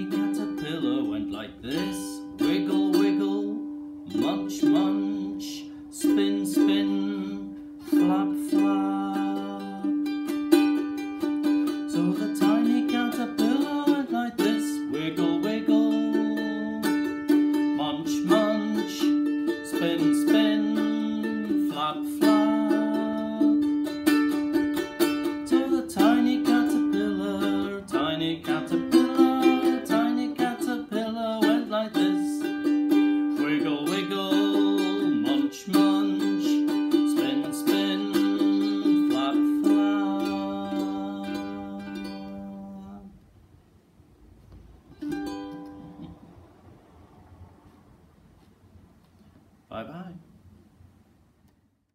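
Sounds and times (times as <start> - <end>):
man singing: 0.0 - 10.2, 11.4 - 43.2
ukulele strumming: 0.0 - 43.2, 44.5 - 47.9.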